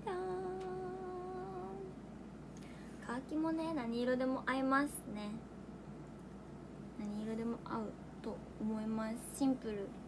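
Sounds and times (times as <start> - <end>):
young woman singing long note: 0.0 - 2.0.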